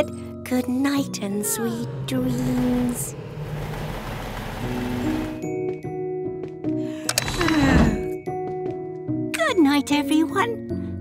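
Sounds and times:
low hum: 1.2s - 5.6s
steady rushing noise: 2.0s - 5.4s.

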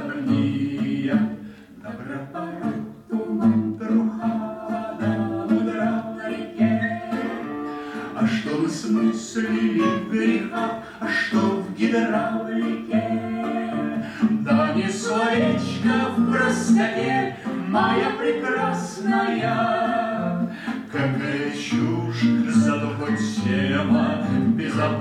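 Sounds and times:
acoustic guitar: 0.0s - 25.0s
man and woman singing duet: 0.0s - 25.0s.

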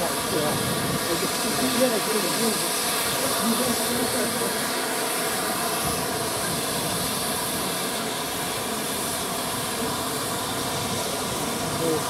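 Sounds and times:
steam hissing from locomotives: 0.0s - 12.0s.

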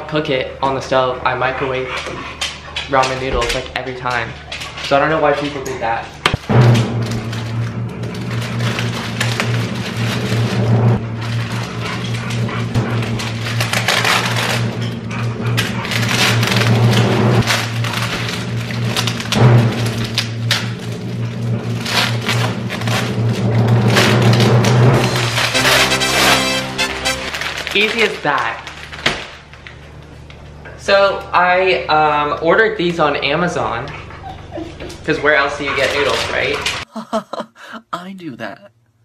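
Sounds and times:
background music with bass and beat: 25.5s - 27.3s.

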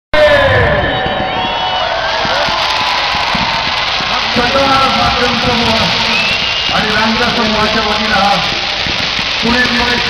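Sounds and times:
fireworks crackles: 0.6s - 10.0s
fireworks fountain hissing: 0.7s - 10.0s.

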